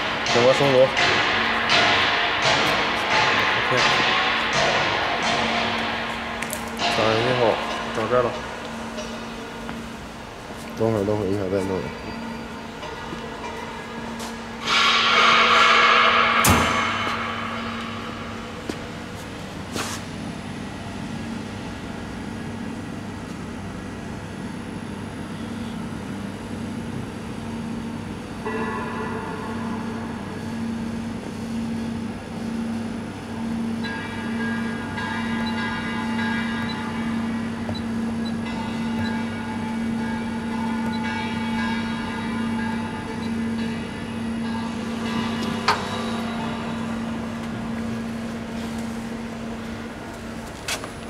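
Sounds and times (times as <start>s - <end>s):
machine humming with pulsing beat: 0.0s - 51.0s.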